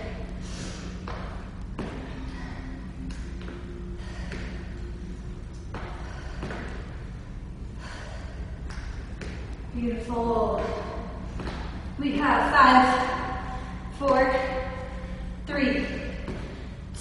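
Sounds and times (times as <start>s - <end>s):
low steady hum: 0.0s - 17.0s
person breathing hard: 0.3s - 1.1s, 3.7s - 5.1s, 5.8s - 9.2s.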